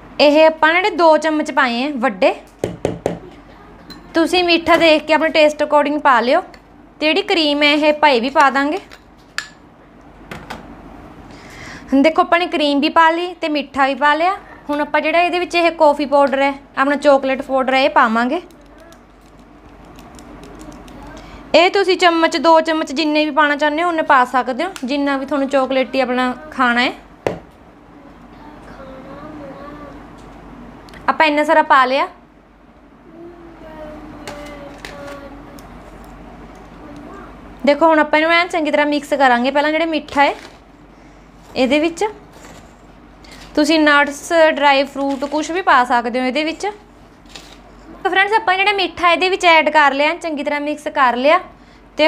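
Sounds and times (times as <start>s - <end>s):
spoon clinking against a bowl: 3.9s - 4.2s.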